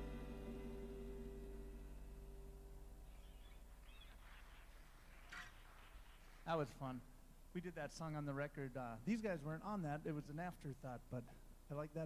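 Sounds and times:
band chord ringing out: 0.0s - 2.7s
faint small noises in hall: 0.0s - 12.0s.

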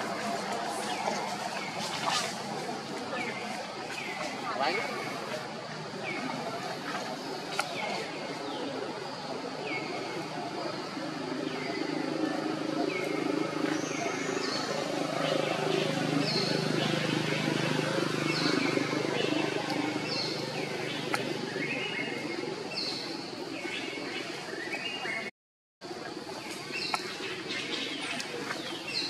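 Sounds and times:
murmur of voices: 0.0s - 25.3s.

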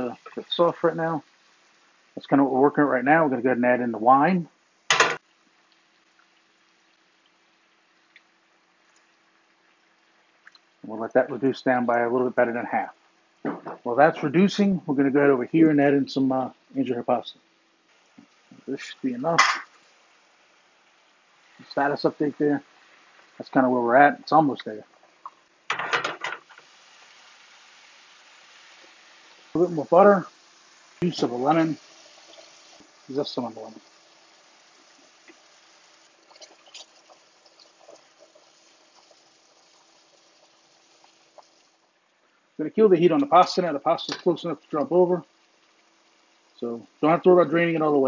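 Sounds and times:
faint hiss: 0.0s - 48.0s
metal skillet clattering on grate: 4.9s - 5.2s, 19.4s - 19.8s, 25.7s - 26.6s.

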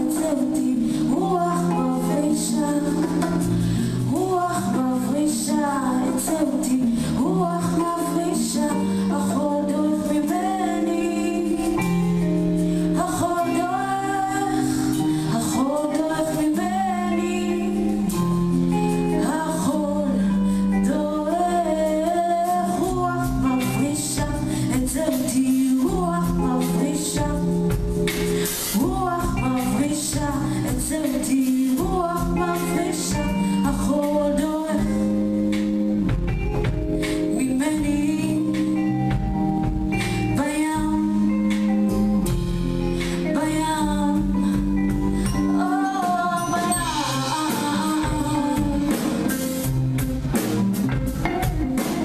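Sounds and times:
woman singing: 0.0s - 49.8s
bass guitar: 0.0s - 52.0s
drums: 0.0s - 52.0s
electric guitar: 0.0s - 52.0s
live band playing: 0.0s - 52.0s
drum and percussion strikes: 46.4s - 52.0s.

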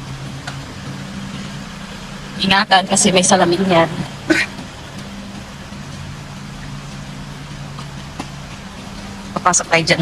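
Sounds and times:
rain hissing: 0.0s - 10.0s
van engine idling: 0.0s - 10.0s.

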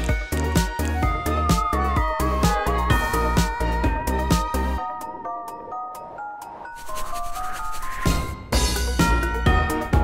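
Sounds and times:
light background music: 0.0s - 10.0s
hand rubbing glitter paper: 6.8s - 8.2s.

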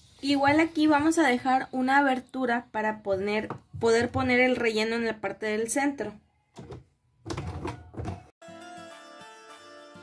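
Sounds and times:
light instrumental music: 8.4s - 10.0s.

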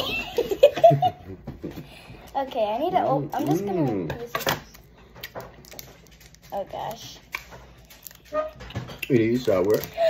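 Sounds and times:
candy wrapper crinkling: 3.3s - 10.0s.

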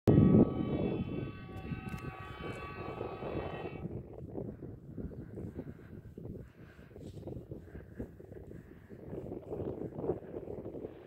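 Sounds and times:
vehicle horn long blast: 0.1s - 3.9s
loud low rumble: 0.1s - 5.8s.

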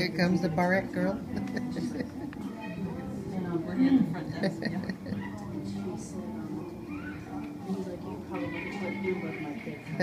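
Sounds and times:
adult chatter: 0.0s - 10.0s.

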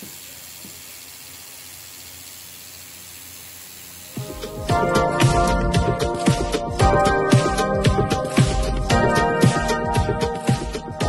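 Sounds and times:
tattoo machine hissing: 0.0s - 4.9s.

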